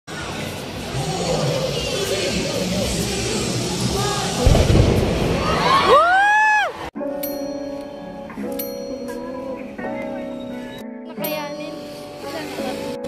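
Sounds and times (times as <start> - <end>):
crowd hubbub: 0.1 - 6.0
person whooping: 5.6 - 6.8
soft bell-like music: 7.0 - 13.0.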